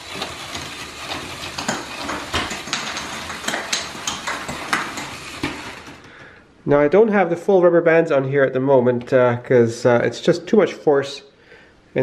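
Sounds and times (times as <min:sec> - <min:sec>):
electric motor: 0:00.0 - 0:06.1
clatter of plastic gears: 0:00.0 - 0:06.2.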